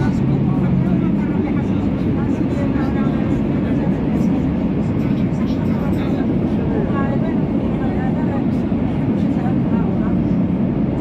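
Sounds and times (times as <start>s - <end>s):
faint voices: 0.0s - 11.0s
train rumbling in motion: 0.0s - 11.0s.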